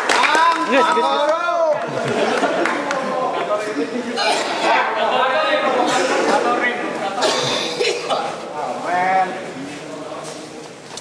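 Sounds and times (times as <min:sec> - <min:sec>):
people talking: 0:00.2 - 0:10.7
person coughing: 0:07.2 - 0:08.3.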